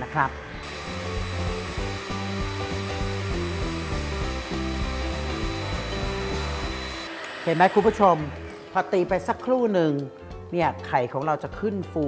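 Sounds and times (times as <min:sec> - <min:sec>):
electric hand mixer whipping: 0:00.0 - 0:09.7
background music: 0:00.0 - 0:12.0.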